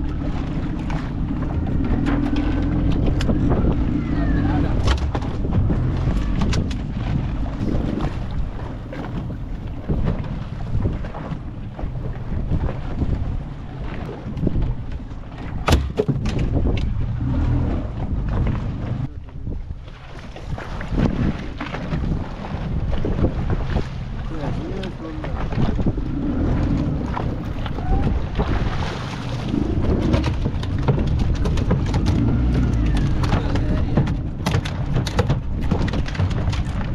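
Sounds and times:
choppy water rushing: 0.0s - 36.9s
wind buffeting microphone: 0.0s - 36.9s
knocks on boat: 4.7s - 13.2s, 14.0s - 19.0s, 20.6s - 26.0s, 26.7s - 36.9s.

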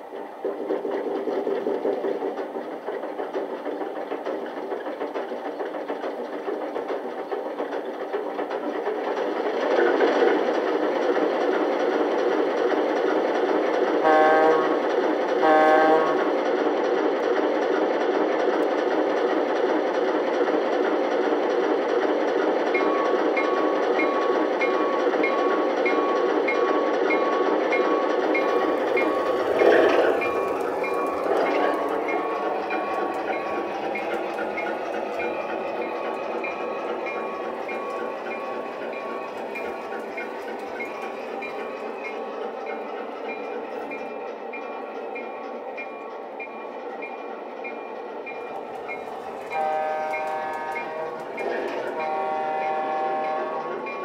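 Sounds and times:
horn blasts: 14.1s - 14.8s, 15.4s - 16.2s, 49.6s - 51.3s, 52.0s - 53.7s
locomotive bell ringing: 22.8s - 54.0s.

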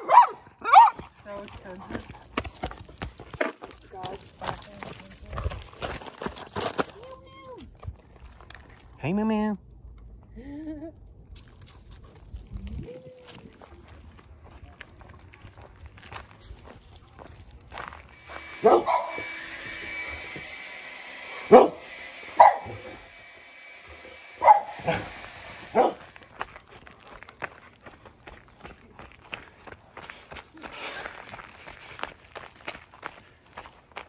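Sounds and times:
dog barking: 0.0s - 1.0s, 18.6s - 19.3s, 21.5s - 21.8s, 22.4s - 23.0s, 24.4s - 25.1s, 25.7s - 26.1s.

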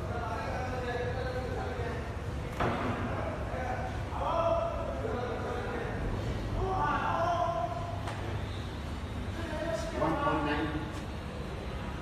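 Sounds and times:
people talking in a hall: 0.0s - 12.0s
steady low hum: 0.0s - 12.0s.

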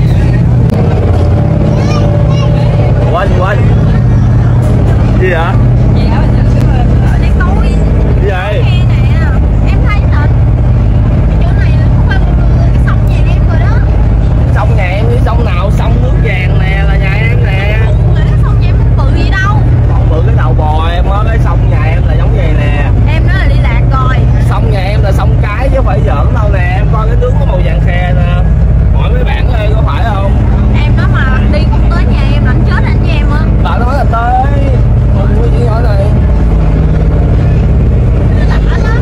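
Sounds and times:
boat engine drone: 0.0s - 39.0s
voices: 0.0s - 39.0s.

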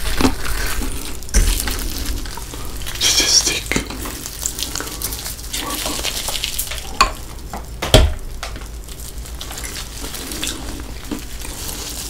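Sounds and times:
crisp snack crackling: 0.0s - 12.0s.

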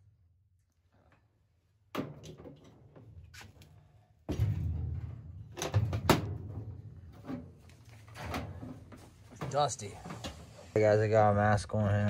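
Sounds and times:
metallic knocks and rattles: 4.3s - 9.9s.

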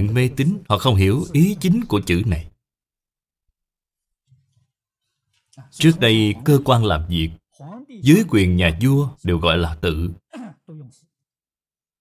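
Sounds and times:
person speaking: 0.0s - 2.6s, 5.4s - 11.1s
soft voiced sounds: 0.0s - 2.6s, 5.4s - 11.2s.

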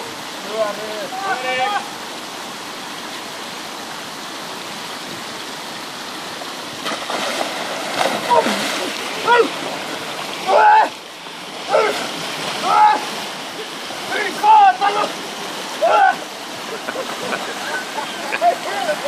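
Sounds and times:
churning water: 0.0s - 19.0s
person splashing into water: 6.8s - 10.9s
people yelling and gasping: 8.2s - 9.6s, 10.4s - 11.0s, 11.6s - 16.3s.

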